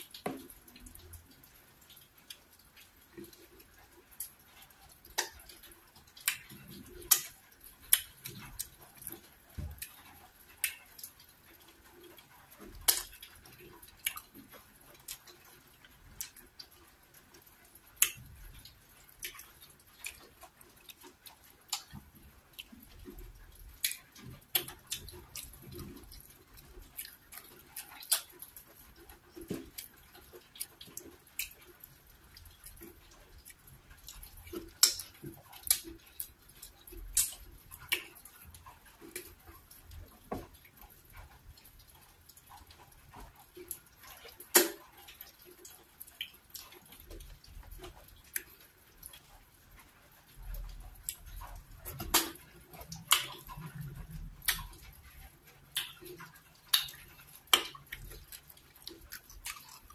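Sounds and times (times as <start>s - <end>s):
chewing: 0.0s - 59.9s.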